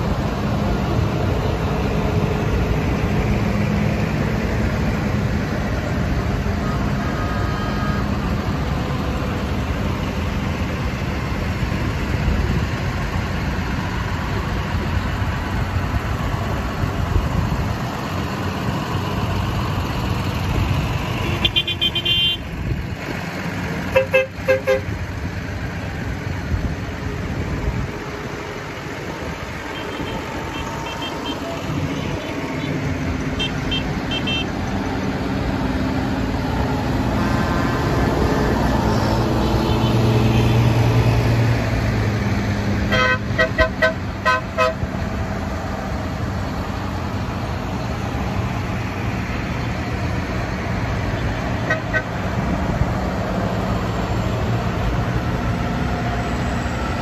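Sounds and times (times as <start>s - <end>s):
tractor diesel engines: 0.0s - 57.0s
vehicle horn toots: 21.2s - 22.4s, 23.9s - 24.9s, 33.4s - 34.5s, 42.9s - 44.8s, 51.6s - 52.1s.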